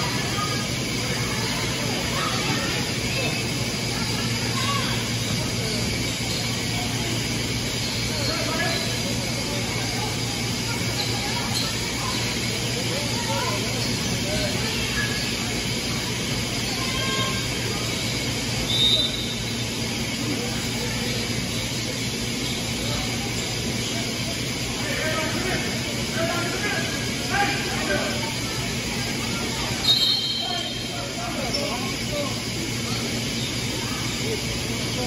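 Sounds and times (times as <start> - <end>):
distant shouts and voices: 0.0 - 35.0
steady hum: 0.0 - 35.0.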